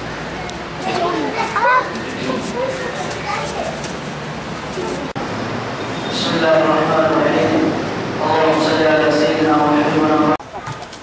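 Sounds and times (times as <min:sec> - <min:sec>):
background murmur: 0:00.0 - 0:11.0
children talking and calling out: 0:00.3 - 0:05.2.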